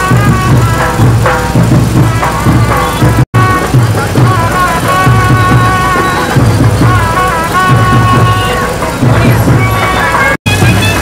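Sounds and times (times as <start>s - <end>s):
music with steady beat: 0.0s - 11.0s.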